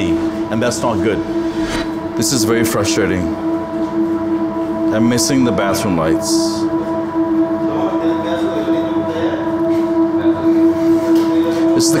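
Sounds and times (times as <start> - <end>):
sustained musical drone: 0.0 - 12.0.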